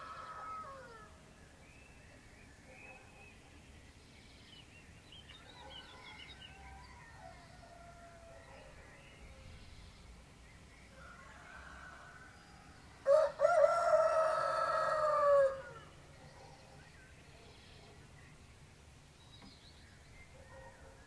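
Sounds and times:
faint songbirds chirping: 0:00.0 - 0:21.0
rooster crowing: 0:11.0 - 0:15.8.

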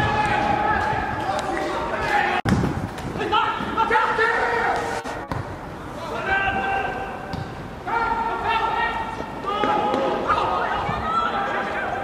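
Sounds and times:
footballers shouting: 0:00.0 - 0:02.5, 0:06.0 - 0:12.0.

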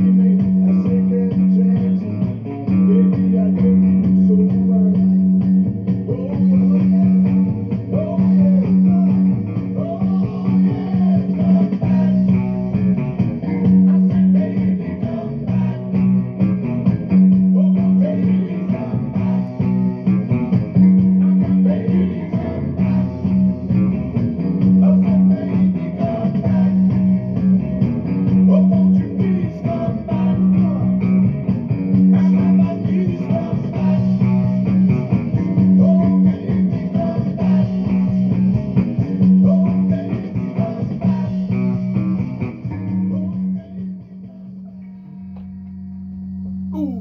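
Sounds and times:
electric guitar melody: 0:00.0 - 0:47.0
low held note: 0:44.6 - 0:47.0.

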